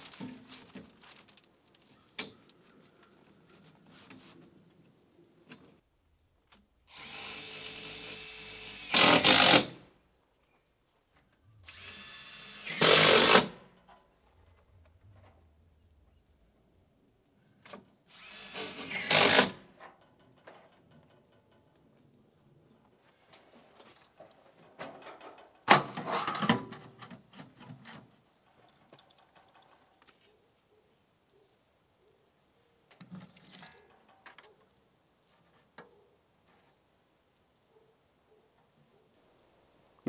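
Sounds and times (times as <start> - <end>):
cordless drill driving screws into metal: 6.9 - 9.8, 11.7 - 13.6, 18.2 - 19.7.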